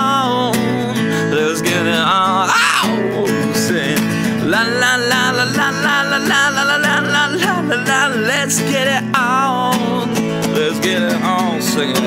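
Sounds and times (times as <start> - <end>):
wordless vocal: 1.8 - 9.1
acoustic guitar strumming: 1.8 - 11.6.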